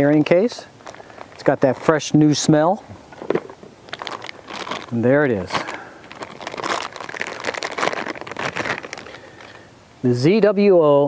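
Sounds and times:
packaging rustling and crinkling: 0.0 - 2.4, 3.1 - 9.6.

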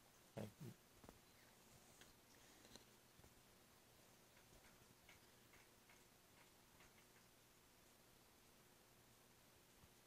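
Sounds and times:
faint irregular ticks: 0.4 - 3.4, 4.1 - 8.0.

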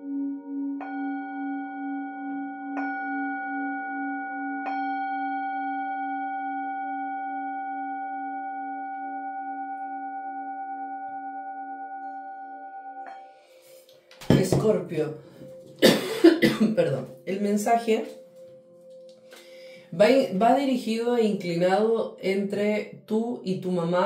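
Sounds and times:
singing bowl ringing: 0.0 - 22.0.

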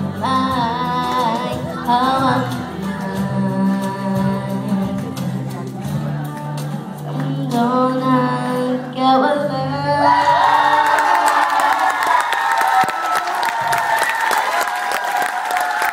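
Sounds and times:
young woman singing: 0.0 - 11.9
sustained backing music: 0.0 - 12.0
audience applause and cheering: 10.0 - 15.9.

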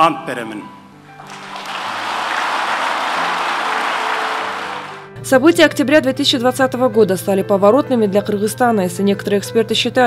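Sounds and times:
audience applauding: 1.2 - 5.2.

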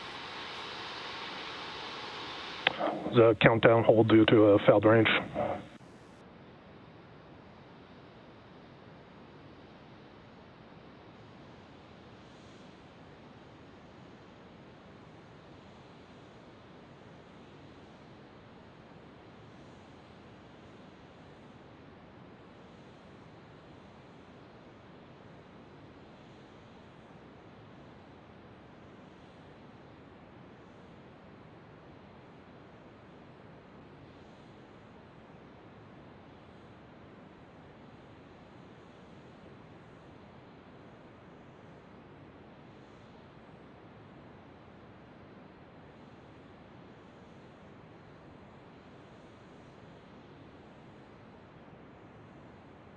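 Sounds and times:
outdoor ambient hiss: 0.0 - 52.9.

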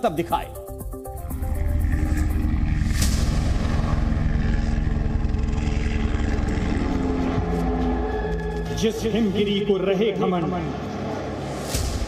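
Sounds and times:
music: 0.0 - 5.6, 11.3 - 12.0
propeller aircraft engine rumble: 1.4 - 7.4.

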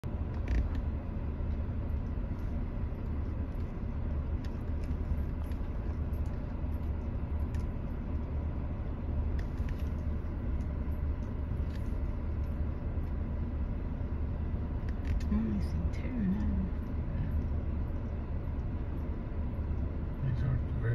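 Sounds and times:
car engine idling: 0.0 - 20.9.

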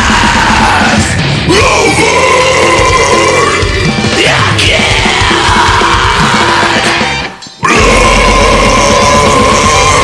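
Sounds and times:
man screaming vocals: 0.0 - 7.0, 7.6 - 10.0
loud deathcore music: 0.0 - 10.0.

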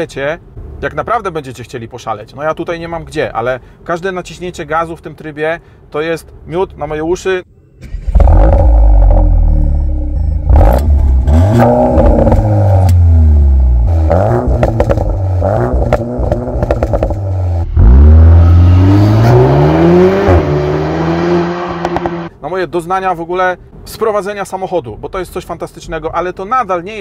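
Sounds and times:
car engine revving: 7.8 - 22.3
exhaust crackles and pops: 14.4 - 17.4.

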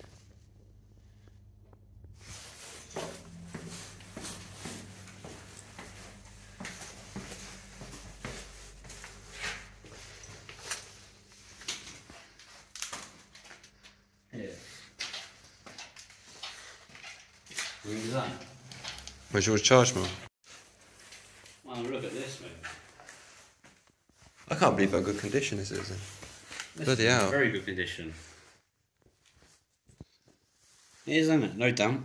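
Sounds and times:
footsteps on concrete: 2.6 - 11.5.

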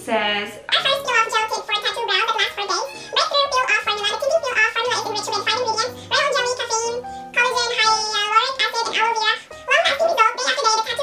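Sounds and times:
woman speaking: 0.0 - 6.2.

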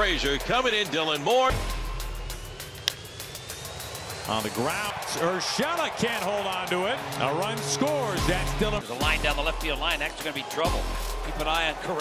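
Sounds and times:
background music: 0.0 - 12.0
ballpark crowd noise: 0.0 - 12.0
bat cracking a ball: 2.8 - 3.0.

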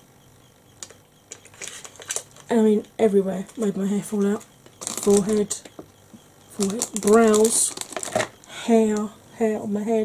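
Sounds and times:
quiet sharp clicks: 0.7 - 2.5.

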